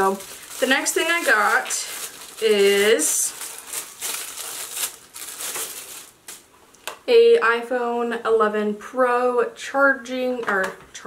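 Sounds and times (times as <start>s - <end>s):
packaging rustling and crinkling: 0.0s - 6.5s.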